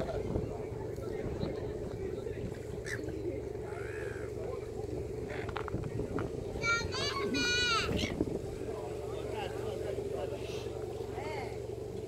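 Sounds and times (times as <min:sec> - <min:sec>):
faint voices: 0:00.0 - 0:12.0
low engine drone: 0:00.0 - 0:12.0.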